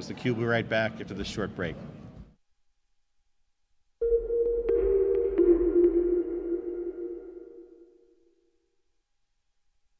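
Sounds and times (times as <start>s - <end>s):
two-note synthesizer tone: 4.0s - 8.3s.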